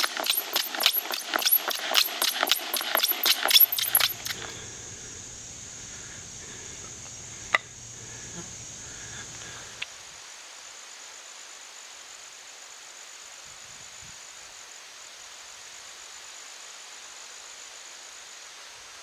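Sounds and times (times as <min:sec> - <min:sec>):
wooden spindle grinding and squeaking: 0:00.0 - 0:04.4
sharp click: 0:00.0 - 0:04.5
faint steady hiss: 0:03.1 - 0:19.0.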